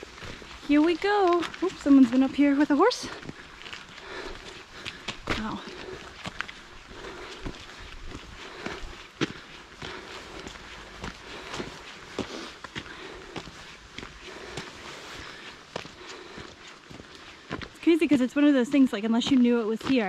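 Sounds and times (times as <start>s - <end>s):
footsteps on wet dirt: 0.0s - 20.0s.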